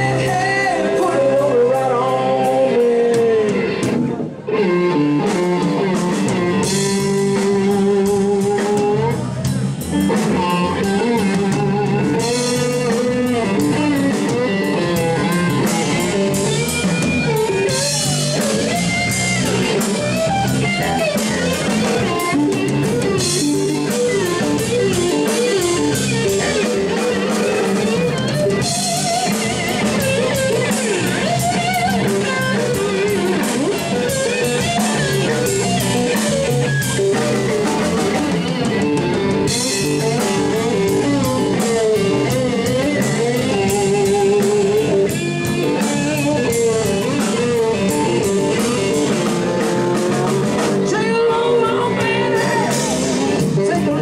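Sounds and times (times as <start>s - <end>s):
bass guitar: 0.0s - 54.0s
drum kit: 0.0s - 54.0s
electric guitar bending notes: 0.0s - 54.0s.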